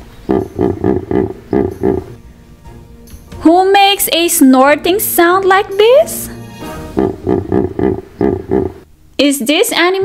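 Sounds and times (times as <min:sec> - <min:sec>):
hippopotamus snorting: 0:00.2 - 0:02.2, 0:06.8 - 0:08.8.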